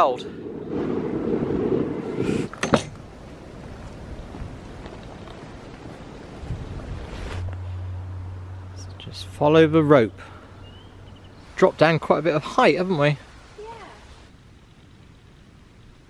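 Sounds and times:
wind buffeting microphone: 0.0 - 7.6
outdoor hiss: 0.0 - 16.0
low steady hum: 5.8 - 12.0.

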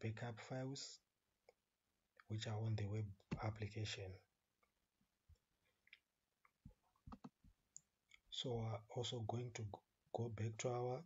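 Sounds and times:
faint clicks and taps: 5.3 - 8.2.

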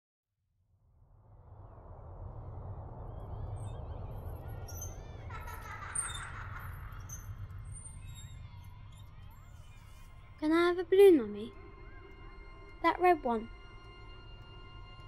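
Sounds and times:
steady low rumble: 0.9 - 8.8
faint high chirps and squeaks: 3.6 - 10.4.

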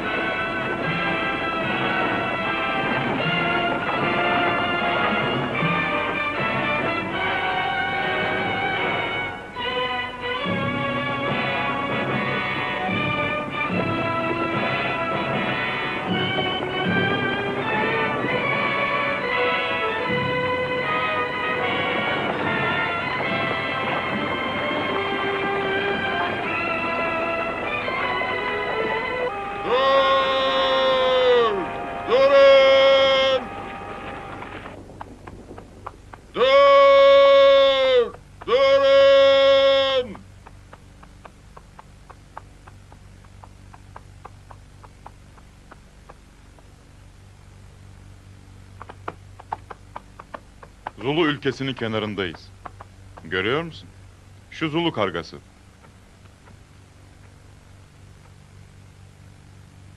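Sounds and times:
orchestral film music: 0.0 - 34.9
long loud falling calls: 24.9 - 47.0.

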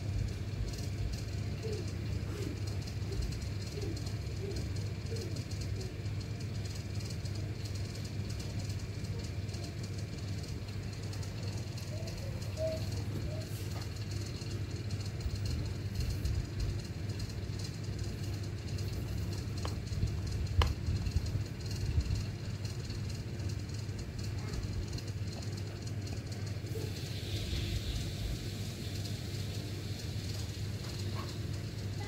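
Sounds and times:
low background rumble: 0.0 - 32.0.

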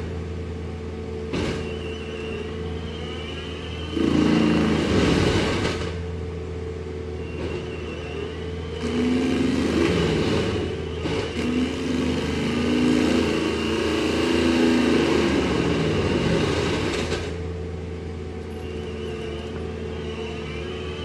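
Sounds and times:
diesel engine running: 0.0 - 21.0.

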